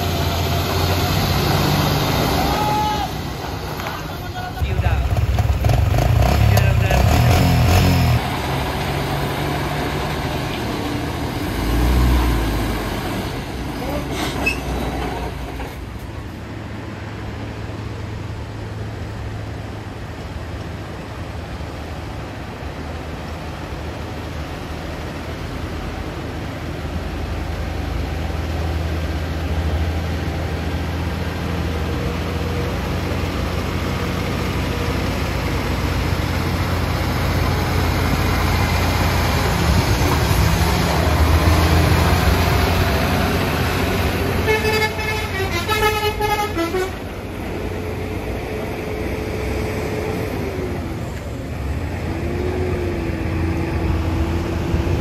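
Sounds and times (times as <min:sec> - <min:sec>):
truck diesel engine rumbling: 0:00.0 - 0:55.0
vehicle horn: 0:44.4 - 0:47.0.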